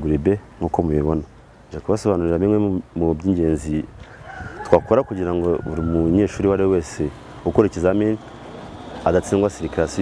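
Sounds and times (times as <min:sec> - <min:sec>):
man talking: 0:00.0 - 0:04.0, 0:04.6 - 0:08.2, 0:09.0 - 0:10.0
rooster crowing: 0:04.1 - 0:07.8.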